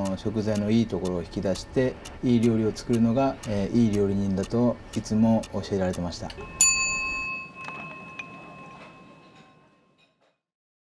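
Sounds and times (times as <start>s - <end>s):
struck chime ringing: 6.4s - 10.0s.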